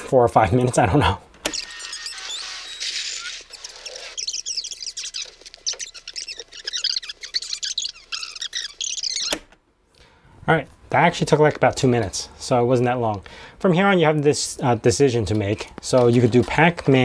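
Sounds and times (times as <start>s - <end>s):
high twittering chirps: 1.5s - 9.4s.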